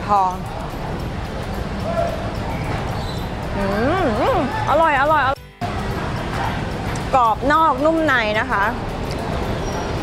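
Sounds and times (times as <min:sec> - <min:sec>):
busy market hall noise: 0:00.0 - 0:10.0.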